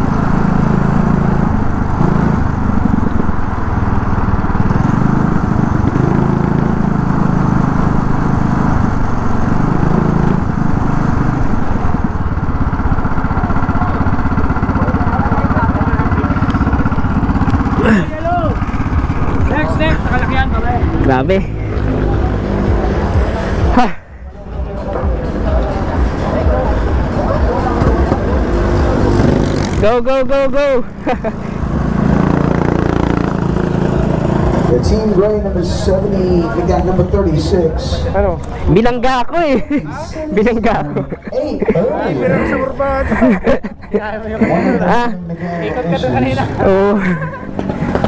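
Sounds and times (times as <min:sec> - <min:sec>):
go-kart engine puttering: 0:00.0 - 0:23.9, 0:24.7 - 0:43.6, 0:45.8 - 0:48.0
babble of voices: 0:11.7 - 0:29.8, 0:39.8 - 0:48.0.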